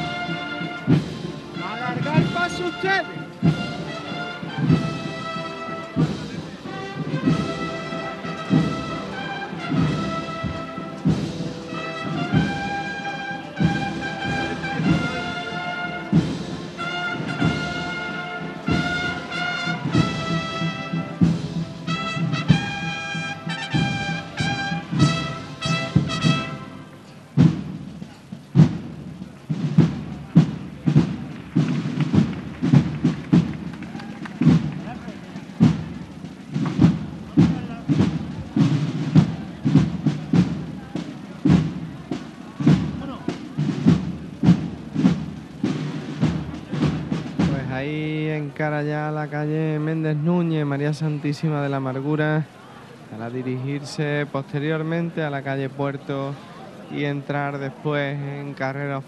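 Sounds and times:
drums beating a march: 0:00.0 - 0:51.4
brass band march melody: 0:00.0 - 0:59.0.

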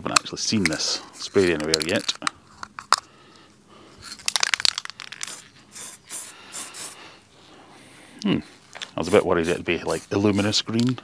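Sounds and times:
spray can rattle: 0:01.4 - 0:02.7, 0:04.0 - 0:07.0
spray paint hissing: 0:04.9 - 0:07.0, 0:09.0 - 0:10.9.

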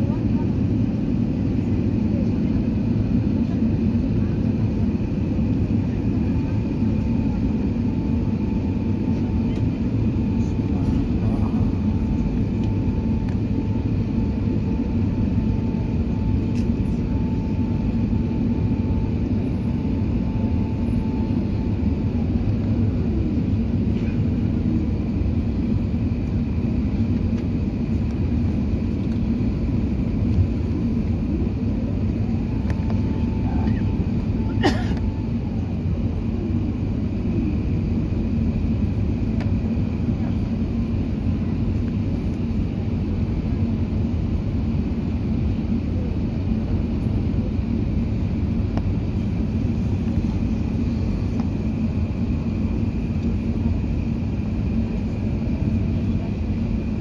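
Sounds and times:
aircraft cabin engine rumble: 0:00.0 - 0:57.0
faint whining tone: 0:05.3 - 0:38.3.

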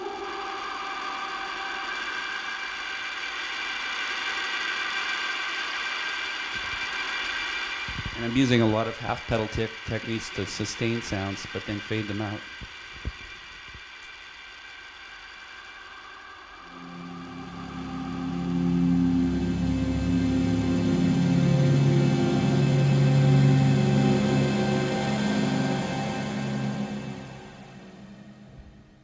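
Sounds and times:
held high synth tones: 0:00.0 - 0:03.4, 0:16.5 - 0:28.7
low synthesized chords: 0:16.6 - 0:29.0.

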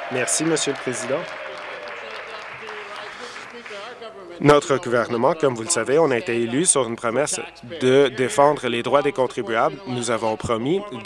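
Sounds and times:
people applauding: 0:00.0 - 0:06.1
voices talking: 0:00.0 - 0:11.0.

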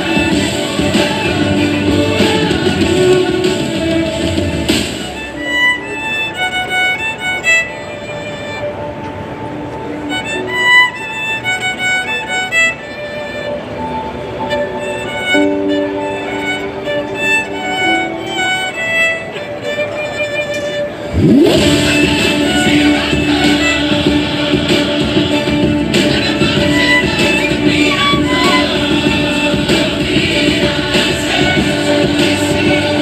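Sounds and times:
violin melody: 0:00.0 - 0:33.0.

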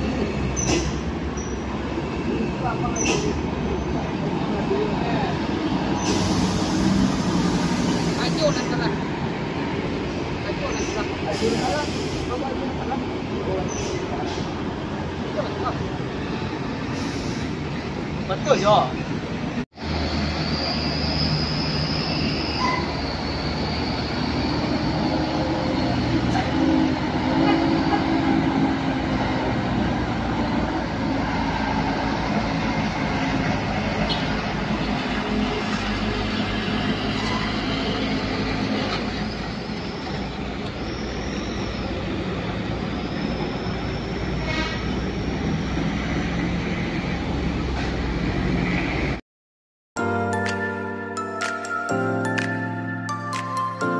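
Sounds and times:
bus diesel engine running: 0:00.0 - 0:49.2
passing road traffic: 0:00.0 - 0:49.2.

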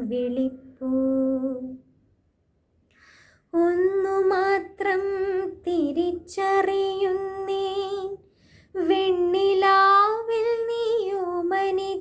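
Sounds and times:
singer breathing: 0:02.9 - 0:03.5, 0:08.2 - 0:08.8.

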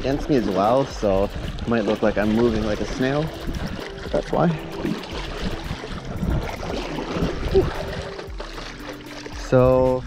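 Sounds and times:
wind buffeting microphone: 0:00.0 - 0:08.5
water rushing and splashing: 0:00.0 - 0:10.0.

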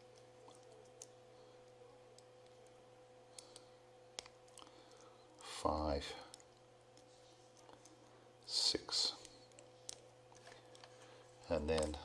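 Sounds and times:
faint steady hum: 0:00.0 - 0:12.0
faint connector clicks: 0:11.6 - 0:12.0.

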